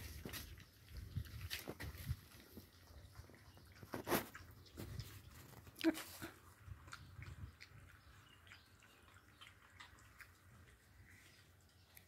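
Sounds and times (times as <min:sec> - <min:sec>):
puppies lapping milk: 0:00.0 - 0:12.0.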